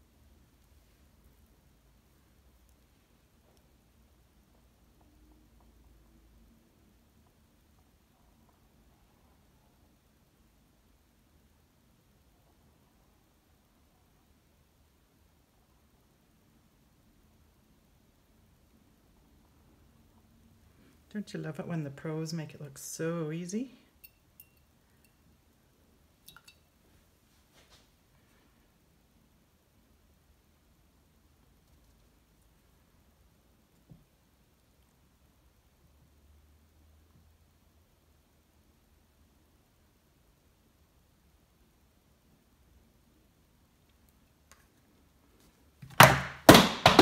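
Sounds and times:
small hard object clinking: 24.0s - 25.2s.

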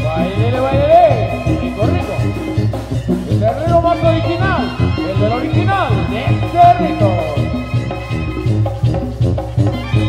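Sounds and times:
brass band playing dance tune: 0.0s - 10.0s.

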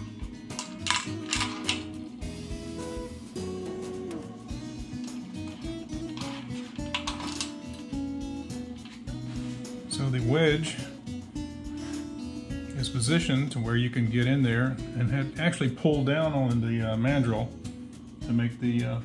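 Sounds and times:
acoustic guitar music: 0.0s - 19.0s.

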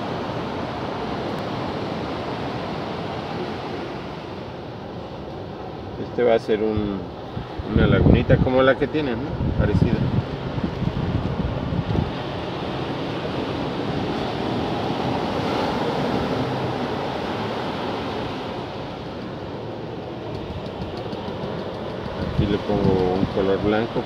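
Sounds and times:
ocean surf: 0.0s - 24.0s
wind on microphone: 6.8s - 19.4s, 20.1s - 24.0s.

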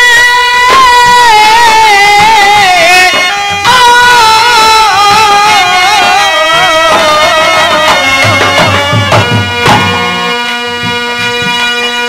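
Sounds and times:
hand drums: 0.4s - 12.0s.

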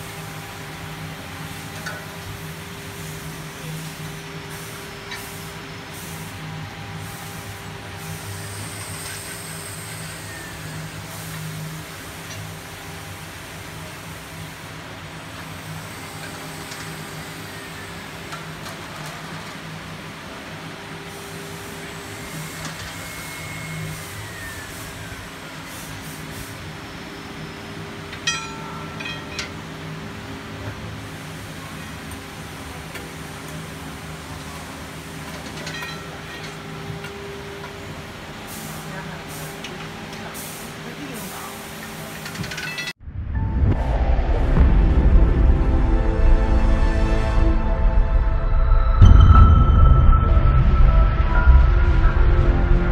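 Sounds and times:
machinery hum and hiss: 0.0s - 49.5s.

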